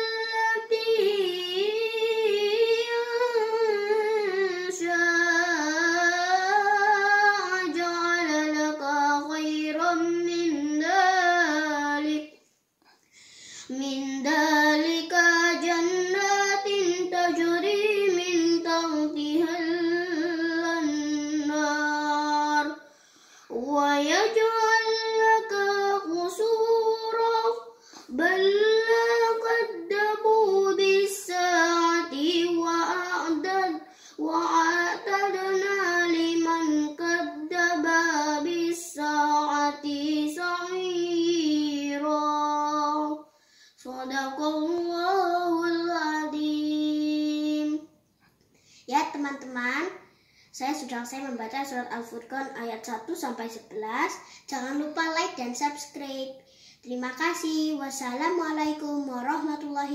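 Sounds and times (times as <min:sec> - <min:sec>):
boy chanting recitation: 0:00.0 - 0:12.4, 0:13.5 - 0:48.0, 0:48.8 - 0:59.9.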